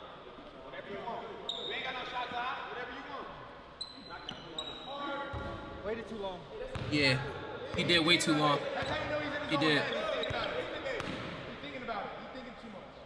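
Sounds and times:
voices in a gym: 0.0s - 13.0s
sneaker squeaks: 1.4s - 2.4s, 3.8s - 5.7s, 6.7s - 6.9s, 8.7s - 11.4s.

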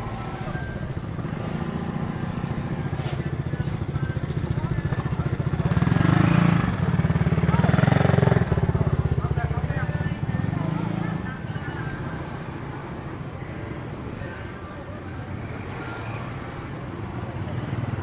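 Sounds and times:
people's voices: 0.0s - 18.0s
street traffic: 0.0s - 18.0s.

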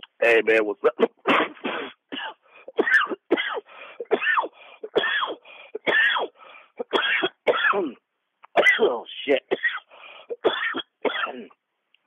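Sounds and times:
man coughing harshly: 0.9s - 8.0s, 8.6s - 11.6s.

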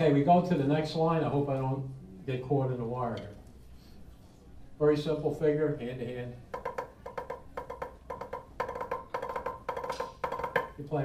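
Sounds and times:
drumsticks on practice pad: 6.5s - 10.9s.

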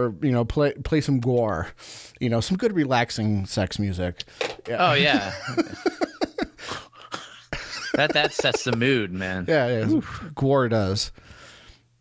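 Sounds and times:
men chuckling: 4.8s - 10.2s.

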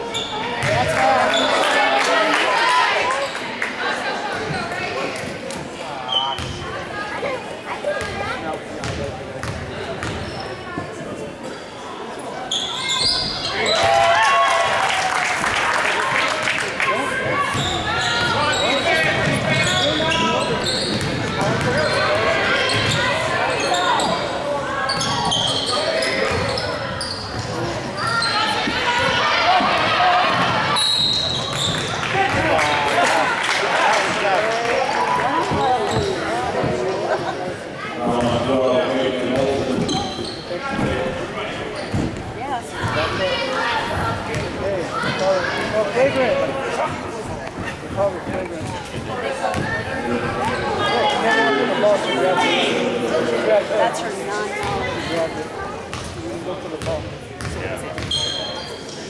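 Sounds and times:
crowd voices: 0.0s - 59.0s.

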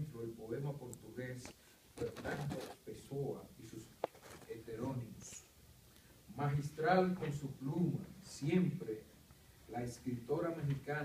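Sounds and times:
man reading aloud: 0.0s - 5.6s, 6.3s - 11.0s.

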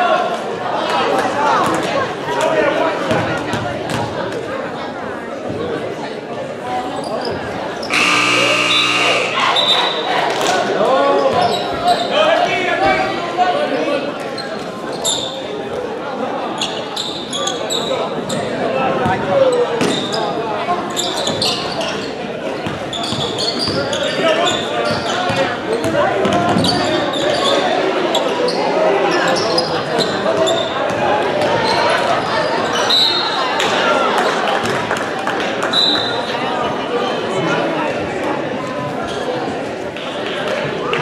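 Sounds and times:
crowd chatter and shouts: 0.0s - 41.0s.

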